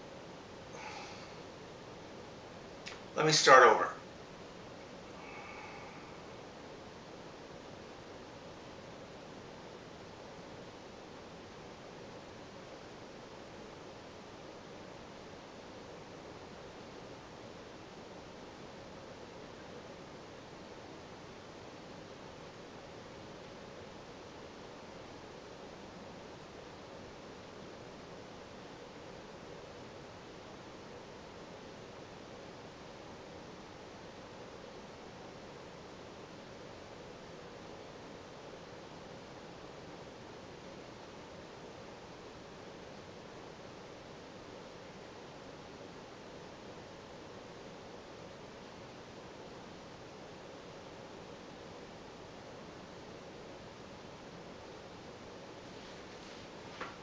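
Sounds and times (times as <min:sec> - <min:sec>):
faint background hiss: 0:00.0 - 0:57.0.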